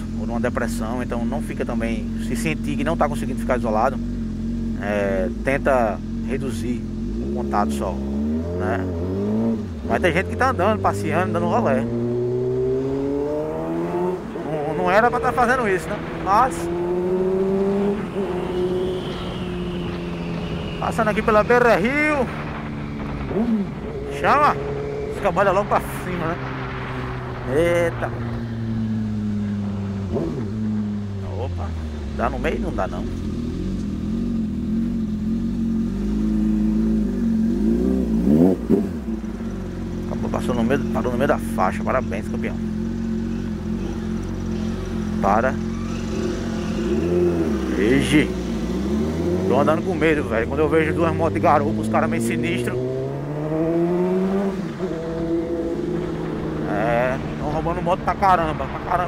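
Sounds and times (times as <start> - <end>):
motorcycle engine cruising: 0.0 - 59.0.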